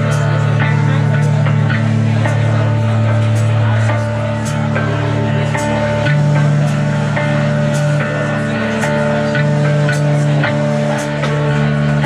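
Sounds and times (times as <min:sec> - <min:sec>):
electric bass notes: 0:00.0 - 0:12.0.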